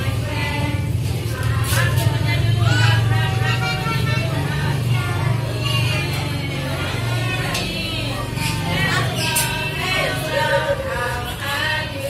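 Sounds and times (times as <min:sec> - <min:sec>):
children singing: 0:00.0 - 0:12.0
teachers and children talking: 0:00.0 - 0:12.0.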